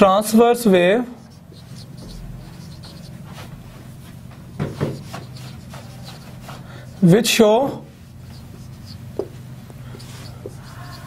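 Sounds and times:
steady low hum: 0:00.0 - 0:11.0
marker writing on whiteboard: 0:01.1 - 0:11.0.

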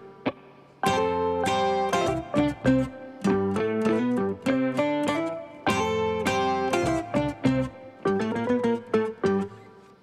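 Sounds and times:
plucked-string melody: 0:00.0 - 0:10.0.

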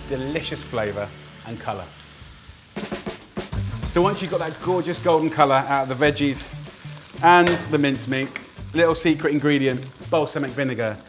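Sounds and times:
background music: 0:00.0 - 0:11.0
snare drum fill: 0:02.8 - 0:04.1
bass drum hit: 0:02.8 - 0:04.2.

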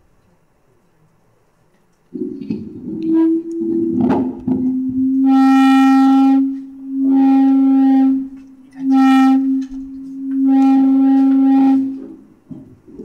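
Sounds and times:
microphone feedback howl: 0:02.2 - 0:12.3.

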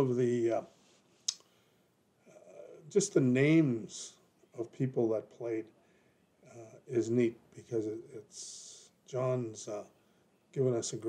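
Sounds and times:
man talking: 0:00.0 - 0:00.8, 0:02.3 - 0:05.7, 0:06.5 - 0:10.0, 0:10.6 - 0:11.0
soft breath: 0:05.7 - 0:06.4.

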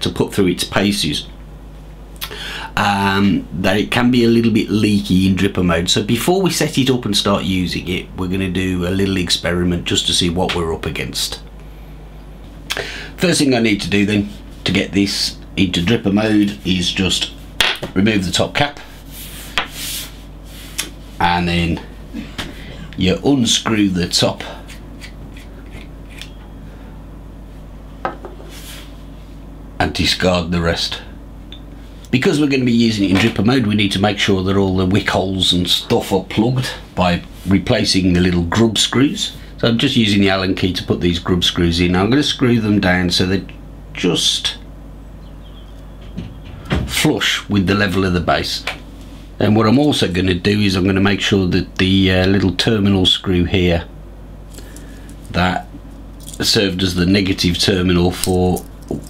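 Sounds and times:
man speaking: 0:00.0 - 0:01.4, 0:02.8 - 0:11.5, 0:13.2 - 0:18.9, 0:21.2 - 0:21.9, 0:22.9 - 0:24.8, 0:29.8 - 0:31.1, 0:32.1 - 0:44.6, 0:46.9 - 0:48.8, 0:49.4 - 0:53.9, 0:55.3 - 0:55.7, 0:56.4 - 0:59.0
low background hum: 0:00.0 - 0:59.0.

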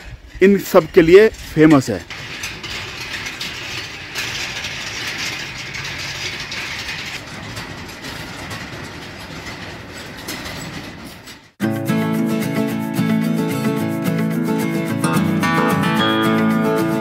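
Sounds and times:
metal prayer wheels rattling: 0:00.0 - 0:11.6.

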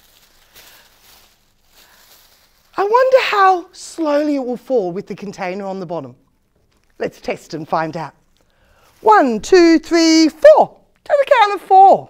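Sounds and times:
plastic bag rustling: 0:00.0 - 0:04.3, 0:08.2 - 0:09.8.

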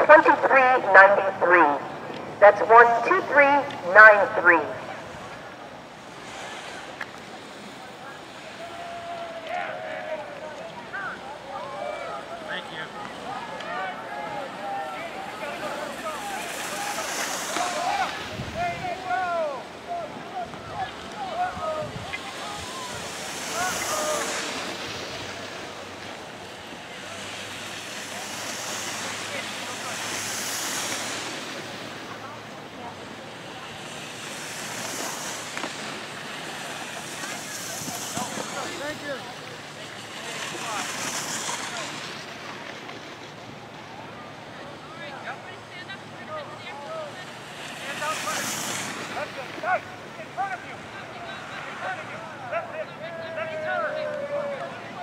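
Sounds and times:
faint voices: 0:00.0 - 0:55.0
wind rushing over microphone: 0:16.8 - 0:19.1, 0:20.5 - 0:26.6.

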